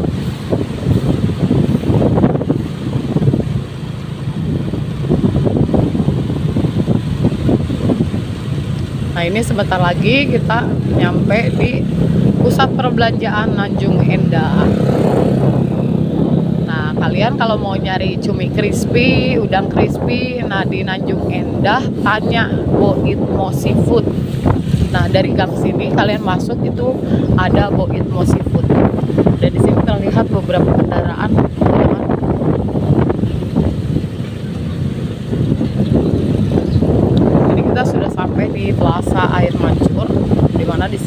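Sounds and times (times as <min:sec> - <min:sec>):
motorcycle engine running: 0:00.0 - 0:41.0
wind rumbling on microphone: 0:00.0 - 0:41.0.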